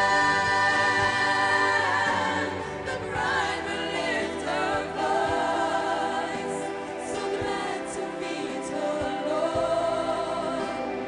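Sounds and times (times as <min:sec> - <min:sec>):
women's vocal group singing: 0:00.0 - 0:11.0.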